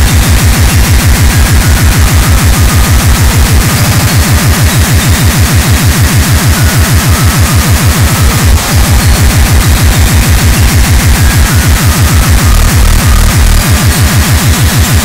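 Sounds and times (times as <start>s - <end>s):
harsh wall of noise: 0.0s - 15.0s
rapid distorted kick drums: 0.0s - 15.0s.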